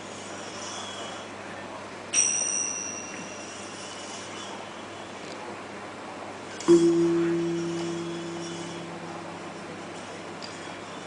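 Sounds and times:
finger cymbals ringing: 0:02.1 - 0:05.2, 0:06.6 - 0:11.0.

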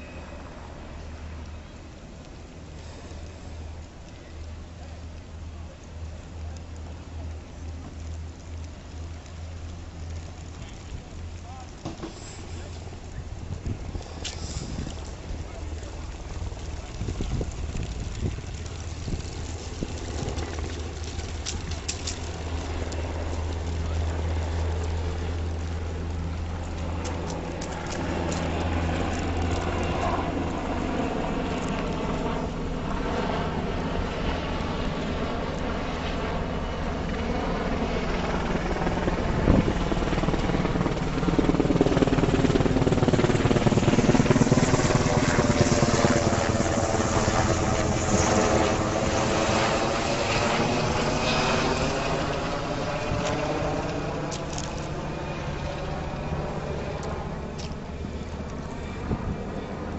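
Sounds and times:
helicopter rotor and turbine drone: 0:10.6 - 0:59.9.

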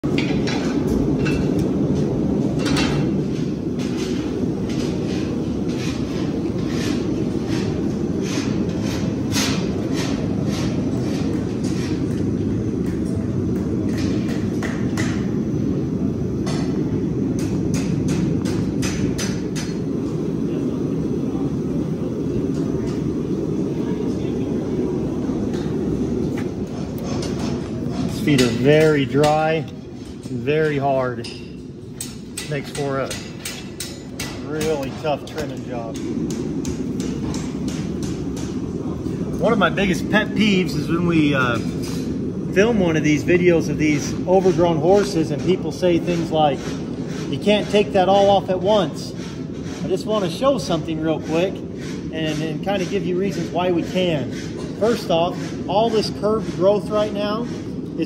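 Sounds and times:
steady low rumble: 0:00.0 - 0:58.0.

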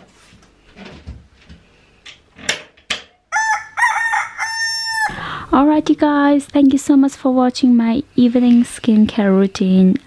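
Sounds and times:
rooster crowing: 0:03.3 - 0:05.4.

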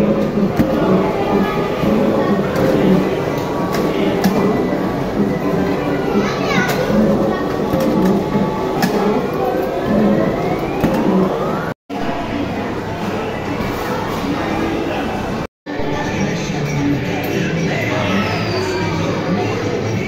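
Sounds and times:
game machine electronic sounds: 0:00.0 - 0:12.2
voices and children chattering: 0:00.0 - 0:20.0.

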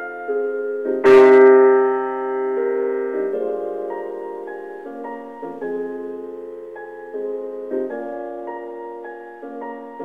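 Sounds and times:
jazz piano chords: 0:00.0 - 0:10.0.

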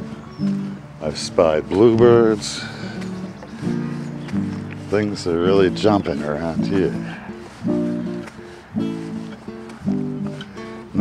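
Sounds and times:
acoustic guitar chords strummed: 0:00.0 - 0:11.0.

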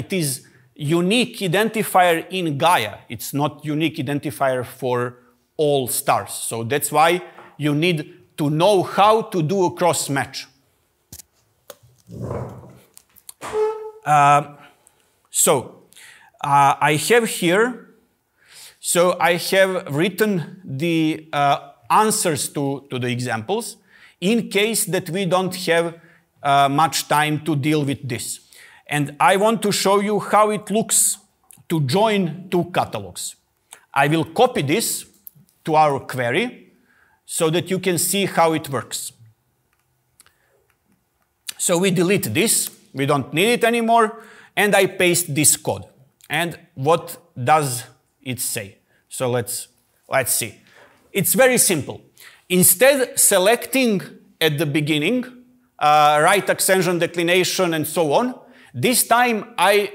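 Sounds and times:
chair creaking: 0:11.3 - 0:14.1.

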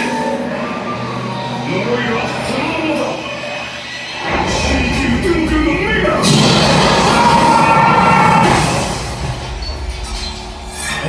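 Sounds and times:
dramatic soundtrack music: 0:00.0 - 0:11.0.

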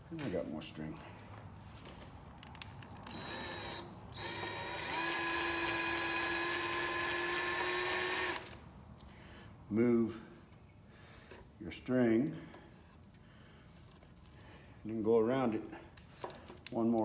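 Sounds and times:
handheld drill motor whining: 0:03.0 - 0:08.6.

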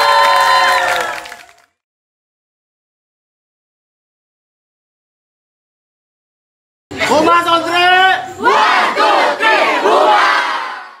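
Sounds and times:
crowd screaming and cheering: 0:00.0 - 0:01.7.

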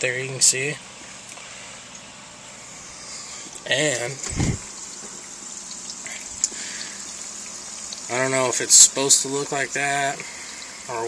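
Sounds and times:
aquarium filter water hiss: 0:00.4 - 0:11.0
low hum: 0:02.5 - 0:05.1.

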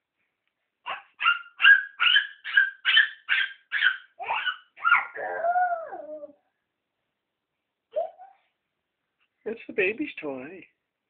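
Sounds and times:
dog barking: 0:00.9 - 0:05.2.

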